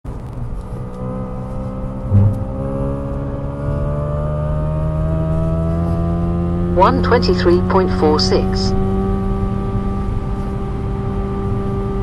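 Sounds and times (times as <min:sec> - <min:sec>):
car engine accelerating: 0:00.1 - 0:12.0
short thump: 0:02.1 - 0:02.5.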